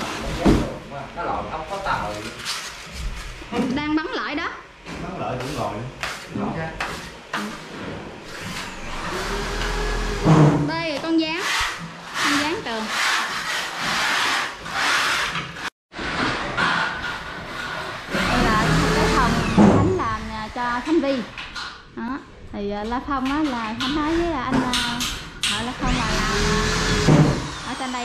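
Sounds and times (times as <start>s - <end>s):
power drill motor: 8.3s - 10.3s, 25.8s - 28.0s
voices: 22.0s - 26.2s.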